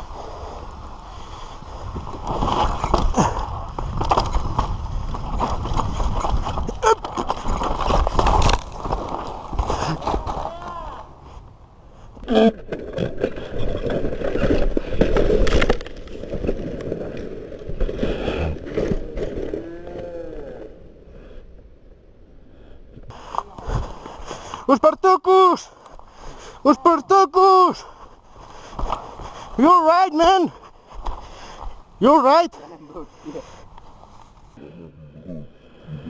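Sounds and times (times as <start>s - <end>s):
bike rattling and knocking: 2.4s - 10.6s.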